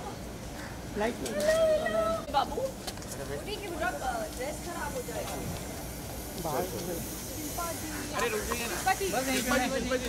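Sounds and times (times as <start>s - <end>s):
background hiss: 2.3s - 10.0s.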